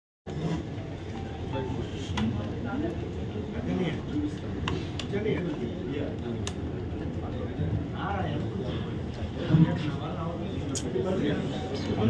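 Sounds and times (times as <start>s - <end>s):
faint indistinct voices: 0.3s - 12.0s.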